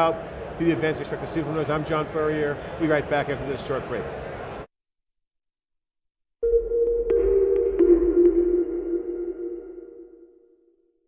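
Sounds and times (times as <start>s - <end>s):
sustained electronic tone: 6.4s - 10.6s.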